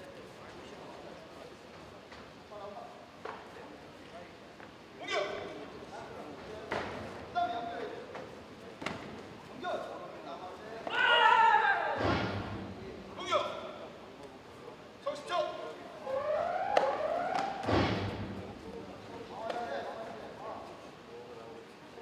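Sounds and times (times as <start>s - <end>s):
fighters shouting: 10.9s - 12.6s.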